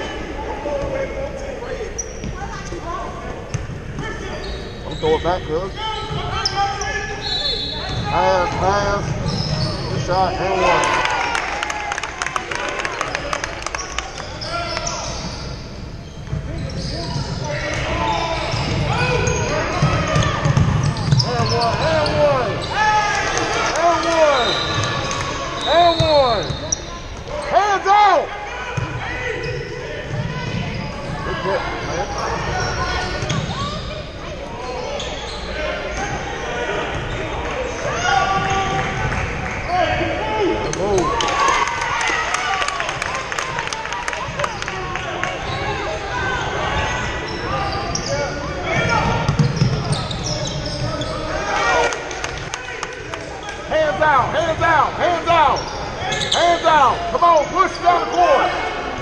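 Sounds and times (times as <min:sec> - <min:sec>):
sneakers squeaking: 0:00.0 - 0:10.8, 0:13.7 - 0:27.9, 0:28.5 - 0:41.2, 0:44.2 - 0:59.0.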